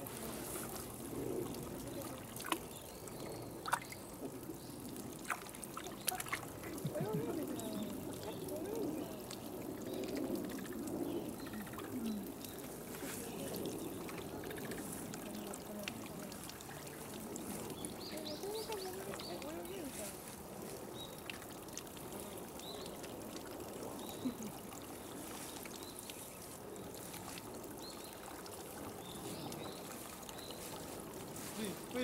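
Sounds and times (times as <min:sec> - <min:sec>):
water pouring into bath: 0:00.0 - 0:32.0
faint voices: 0:05.8 - 0:20.7.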